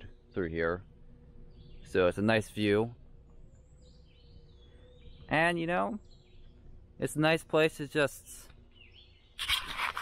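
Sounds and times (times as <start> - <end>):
quiet forest background: 0.0 - 10.0.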